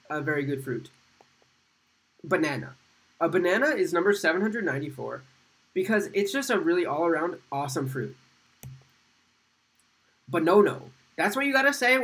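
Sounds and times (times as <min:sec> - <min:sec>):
man speaking: 0:00.0 - 0:00.9, 0:02.2 - 0:08.2, 0:10.3 - 0:12.0.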